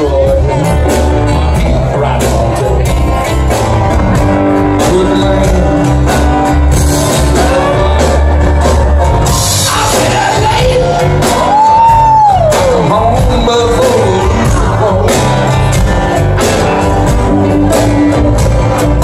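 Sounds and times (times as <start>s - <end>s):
acoustic guitar: 0.0s - 19.0s
drums: 0.0s - 19.0s
keyboards: 0.0s - 19.0s
person singing: 0.0s - 19.0s.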